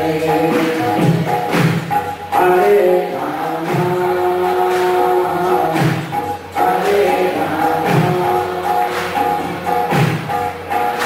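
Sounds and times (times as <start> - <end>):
group devotional singing: 0.0 - 11.0.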